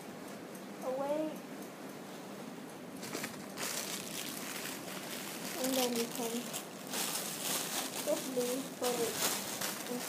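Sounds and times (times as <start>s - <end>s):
plastic bag crinkling: 3.0s - 10.0s.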